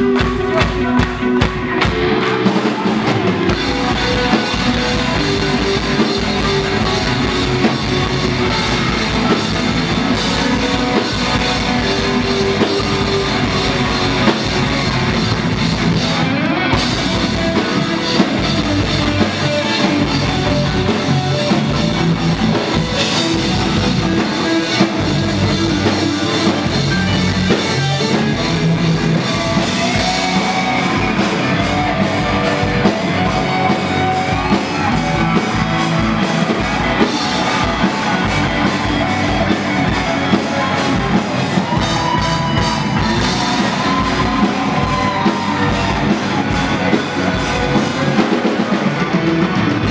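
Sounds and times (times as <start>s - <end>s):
punk rock band playing live: 0.0s - 49.9s.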